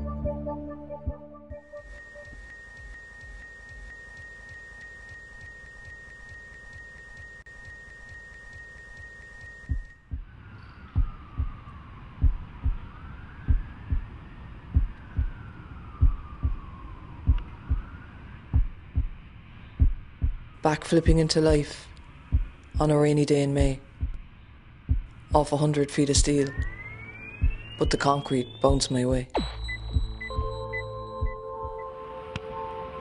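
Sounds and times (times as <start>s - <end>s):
regular low thumps: 0.0s - 1.6s, 9.7s - 10.3s, 11.0s - 12.9s, 13.5s - 14.1s, 14.7s - 15.4s, 16.0s - 17.9s, 18.5s - 19.2s, 19.8s - 21.6s, 22.3s - 23.0s, 23.6s - 25.6s, 26.2s - 28.0s, 28.6s - 31.8s
steady high beep tone: 1.0s - 10.3s, 24.9s - 32.1s
whistling sweeps: 1.6s - 18.4s, 26.4s - 32.2s.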